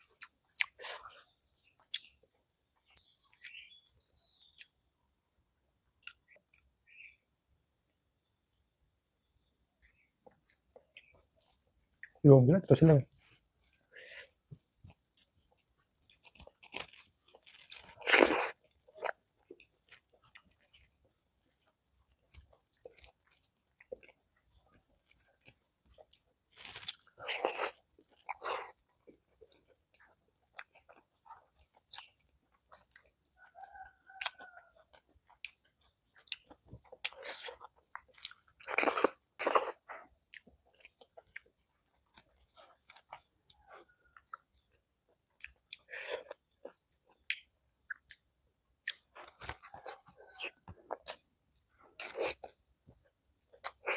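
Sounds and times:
chewing food: 0.0 - 5.0, 5.8 - 7.2, 9.7 - 12.2, 13.1 - 53.9
wet mouth clicks: 1.8 - 2.1, 45.4 - 51.3.

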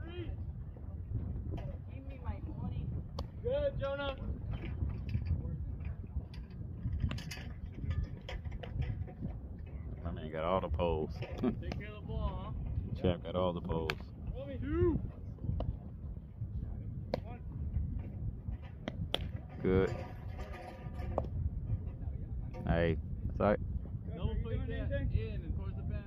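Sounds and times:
steady low rumble: 0.0 - 26.0.

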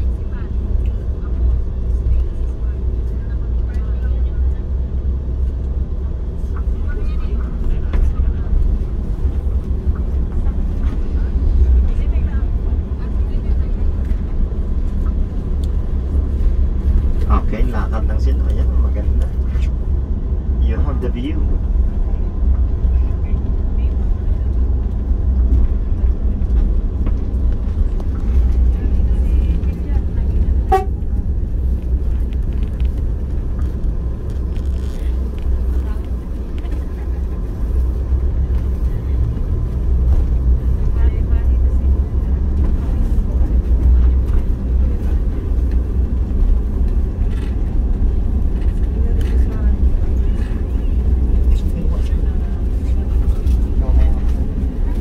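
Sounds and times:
vehicle engine and road rumble: 0.0 - 55.0.

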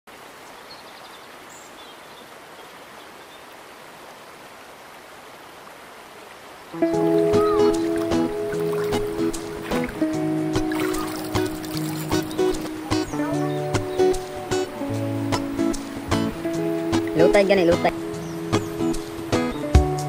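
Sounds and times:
river water flowing: 0.1 - 20.0
background music with held tones: 6.8 - 20.0.

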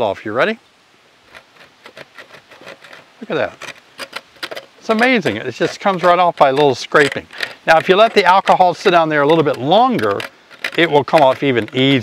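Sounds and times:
metal tool scraping wire mesh: 1.3 - 12.0.

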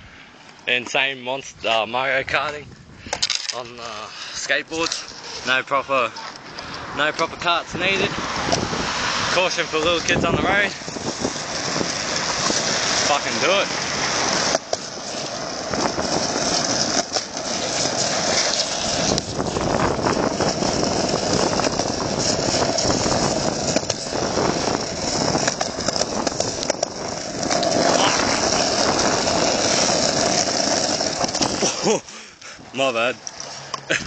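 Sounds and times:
skateboard wheels rolling on road: 0.0 - 34.0.

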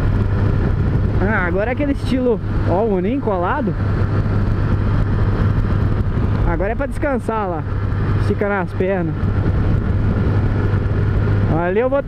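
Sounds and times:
motorcycle engine cruising: 0.0 - 12.0
wind rushing over camera: 0.0 - 12.0.

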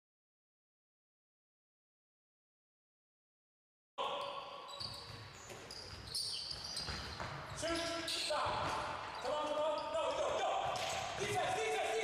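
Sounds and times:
shoe squeaks: 4.1 - 11.2.

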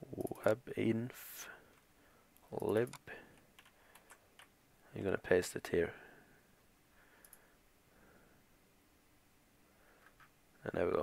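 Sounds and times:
computer keys or mouse clicks: 2.6 - 4.5.

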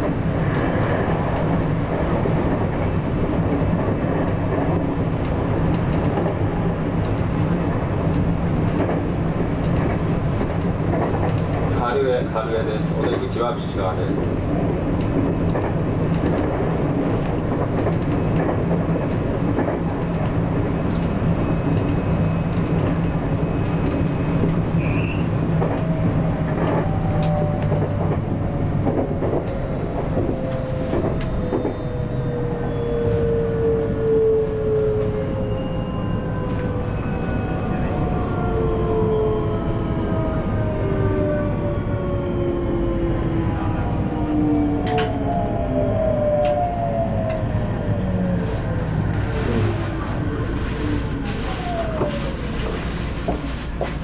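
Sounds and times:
rail clicks: 0.0 - 32.0, 44.8 - 45.2.

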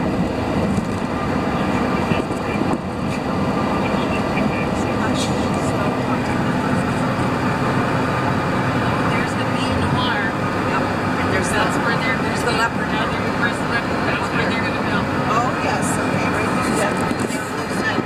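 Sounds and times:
road and engine noise in van: 0.0 - 18.0.

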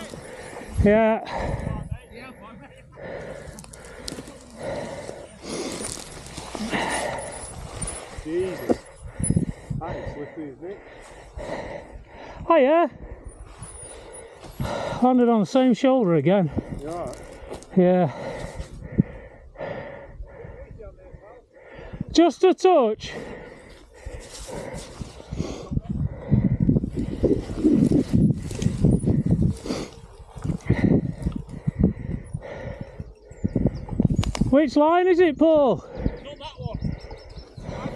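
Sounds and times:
clothing and bracken rustling: 4.0 - 8.9
wind rumble on microphone: 6.1 - 10.2, 24.0 - 34.6, 35.3 - 37.9.

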